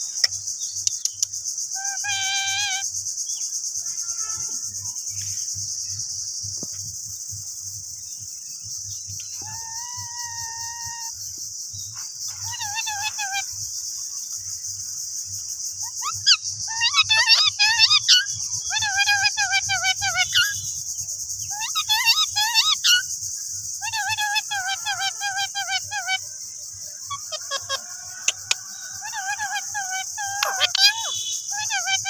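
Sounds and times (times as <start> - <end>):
cricket trill: 0.0 - 32.0
parakeet whistling and chattering: 12.4 - 13.5, 15.8 - 20.7, 21.5 - 23.0, 27.1 - 32.0.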